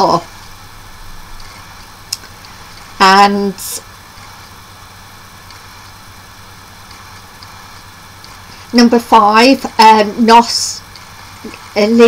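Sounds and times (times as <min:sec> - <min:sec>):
faint hiss: 0:00.0 - 0:12.0
low hum: 0:00.0 - 0:12.0.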